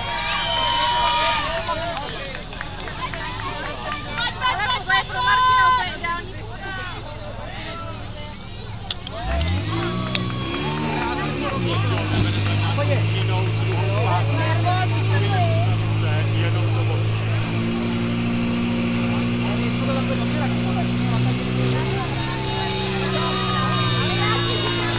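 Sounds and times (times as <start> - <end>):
spectators shouting: 0.0 - 24.9
pump engine running hard: 9.2 - 24.9.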